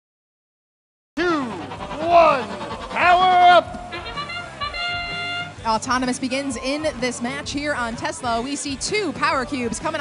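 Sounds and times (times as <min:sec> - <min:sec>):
man shouting drawn-out call: 0:01.2 - 0:05.6.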